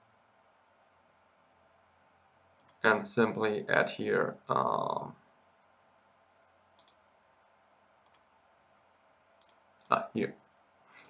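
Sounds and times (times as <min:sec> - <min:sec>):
faint computer mouse clicks: 0:02.6 - 0:02.8, 0:06.8 - 0:07.0, 0:08.0 - 0:08.6, 0:09.4 - 0:09.6.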